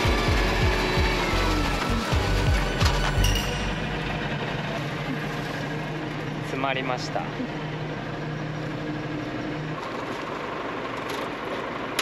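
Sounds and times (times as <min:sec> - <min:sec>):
background music with low beat: 0:00.0 - 0:04.2
tractor engine running: 0:00.0 - 0:12.0.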